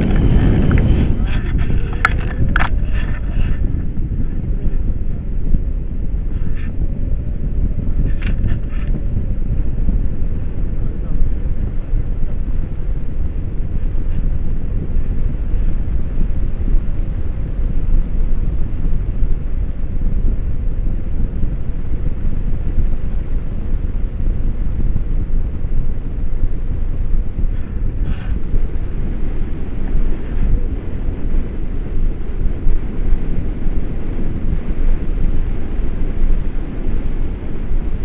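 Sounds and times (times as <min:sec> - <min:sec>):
wind noise on microphone: 0:00.0 - 0:38.0.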